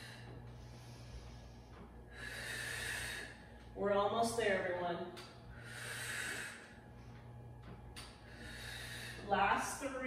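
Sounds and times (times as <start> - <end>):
woman breathing hard: 0.0 - 3.7, 5.4 - 7.4, 8.0 - 9.8
low hum: 0.0 - 10.0.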